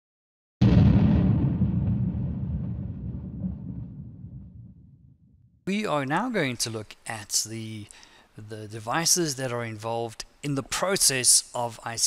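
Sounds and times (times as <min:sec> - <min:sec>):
deep boom: 0:00.6 - 0:05.6.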